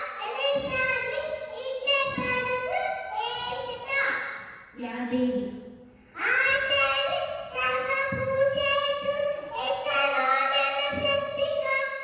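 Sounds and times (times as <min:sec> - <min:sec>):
boy chanting into a microphone: 0:00.0 - 0:03.8, 0:07.5 - 0:12.0.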